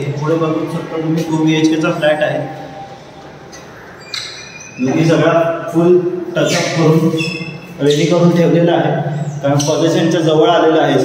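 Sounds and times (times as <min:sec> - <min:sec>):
man speaking: 0:00.0 - 0:02.8, 0:04.8 - 0:11.0.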